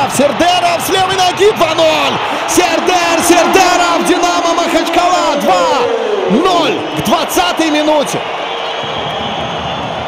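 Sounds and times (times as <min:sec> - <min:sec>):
commentator shouting goal: 0:00.0 - 0:08.2
stadium crowd cheering: 0:00.0 - 0:10.0.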